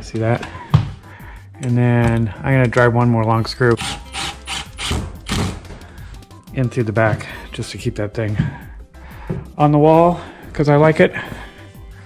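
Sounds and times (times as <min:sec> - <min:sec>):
impact driver driving screw into wood: 0:03.7 - 0:05.6.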